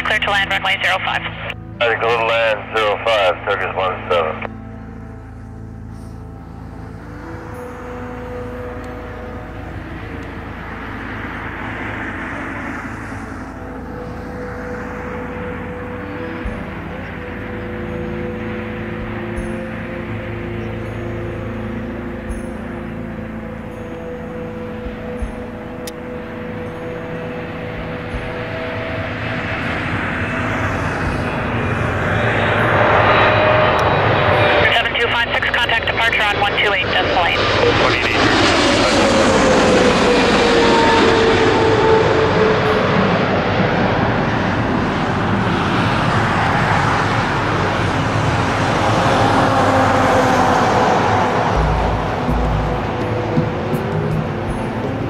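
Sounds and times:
jet engines roaring overhead: 0.0 - 55.0.

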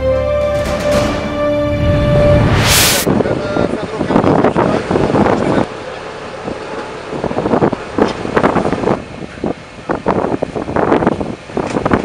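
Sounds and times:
wind rumbling on microphone: 1.7 - 12.0
vehicle engine idling: 3.3 - 11.6.

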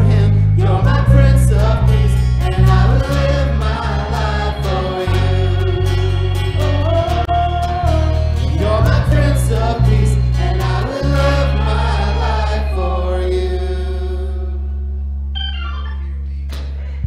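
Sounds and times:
worship band with singers: 0.0 - 15.0
steady bass note: 0.0 - 16.5.

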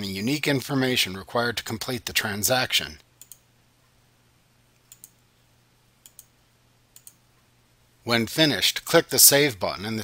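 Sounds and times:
mouse clicks: 4.8 - 5.2, 6.0 - 6.3, 7.0 - 7.2.

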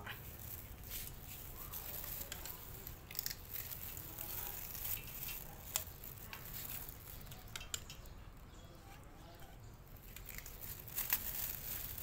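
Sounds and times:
cats chewing crunchy snacks: 10.0 - 12.0.

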